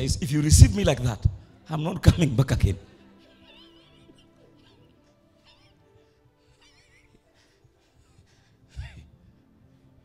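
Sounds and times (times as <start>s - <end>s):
faint background music: 0.0s - 10.0s
high squealing laughs: 3.0s - 8.1s.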